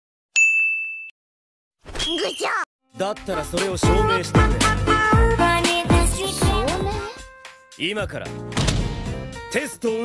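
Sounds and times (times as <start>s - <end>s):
bell-like ding: 0.4s - 1.1s.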